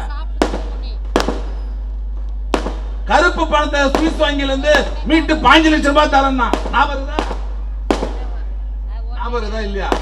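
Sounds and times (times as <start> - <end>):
steady low hum: 0.0 - 10.0
sharp cracks with echo: 0.4 - 8.4.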